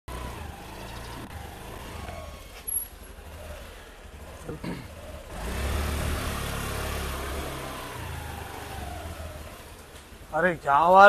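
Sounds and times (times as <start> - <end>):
distant road traffic: 0.1 - 11.0.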